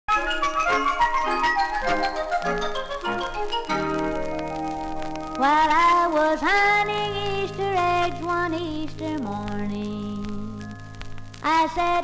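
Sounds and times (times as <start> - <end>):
orchestral pop music: 0.1 - 8.2.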